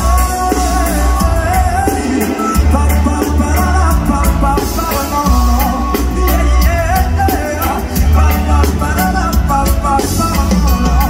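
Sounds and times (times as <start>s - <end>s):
live reggae band playing: 0.0s - 11.0s
person singing: 0.0s - 11.0s.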